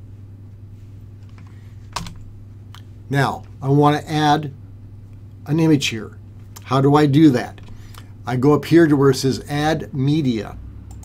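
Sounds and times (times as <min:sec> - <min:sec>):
steady low hum: 0:00.0 - 0:11.0
computer keyboard keystrokes: 0:01.3 - 0:02.3.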